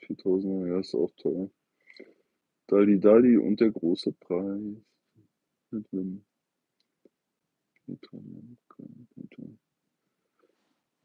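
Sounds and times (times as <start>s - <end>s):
man speaking: 0.0s - 2.1s, 2.7s - 4.8s, 5.8s - 6.2s, 7.8s - 9.6s
faint small clicks: 6.8s - 7.9s.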